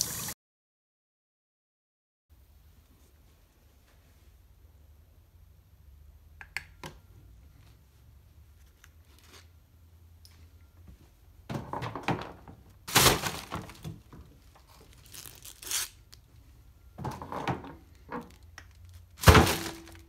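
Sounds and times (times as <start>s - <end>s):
plastic crinkling and knocking: 11.5s - 15.5s, 17.0s - 20.0s.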